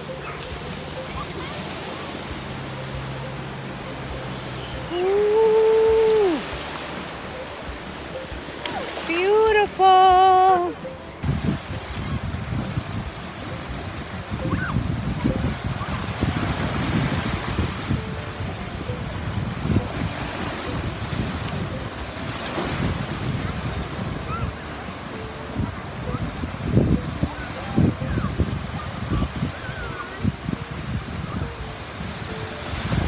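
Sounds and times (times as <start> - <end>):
ocean surf breaking: 0.0 - 33.0
wind buffeting microphone: 11.2 - 33.0.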